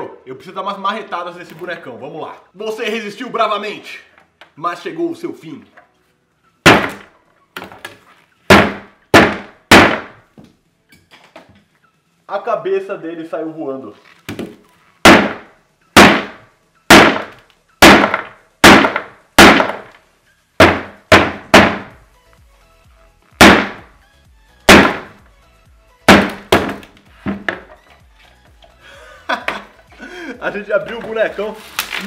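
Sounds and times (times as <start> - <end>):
rubber mallet striking frozen doll: 6.6 - 7.1, 8.5 - 10.2, 14.4 - 19.9, 20.6 - 22.0, 23.4 - 23.9, 24.7 - 25.2, 26.1 - 27.7
frozen rubber cracking: 31.0 - 32.0.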